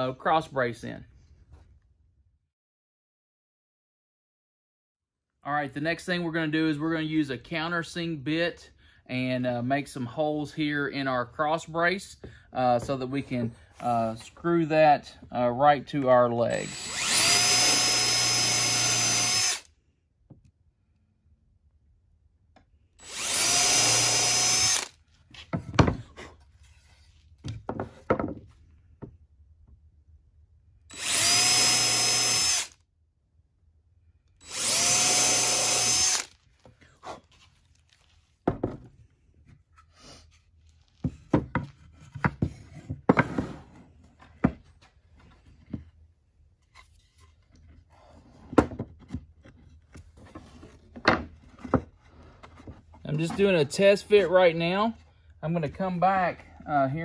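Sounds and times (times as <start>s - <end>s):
cordless drill whining: 16.5s - 19.7s, 23.0s - 25.0s, 30.9s - 32.8s, 34.4s - 36.4s.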